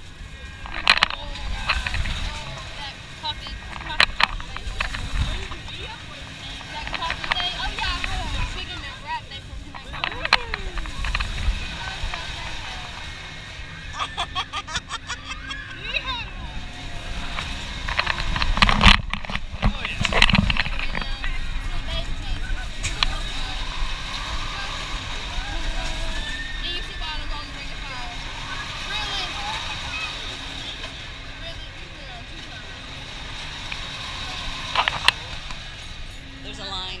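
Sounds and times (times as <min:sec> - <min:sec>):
wind buffeting microphone: 0:00.0 - 0:14.5, 0:15.6 - 0:29.6
riders' voices: 0:19.4 - 0:37.0.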